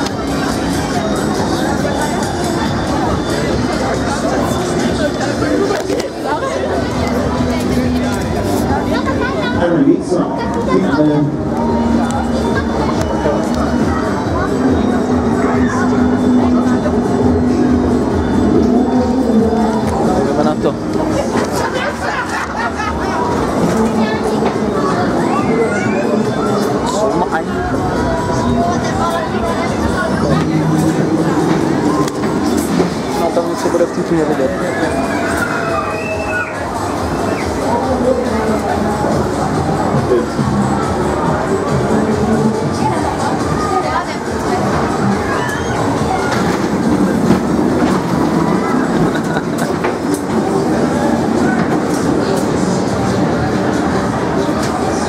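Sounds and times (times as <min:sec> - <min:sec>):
crowd hubbub: 0:00.0 - 0:55.0
ride cars rumbling on track: 0:00.0 - 0:55.0.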